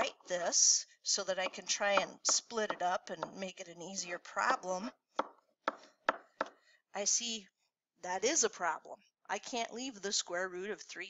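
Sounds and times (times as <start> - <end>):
stylus tapping writing surface: 1.4 - 3.5, 5.2 - 6.6.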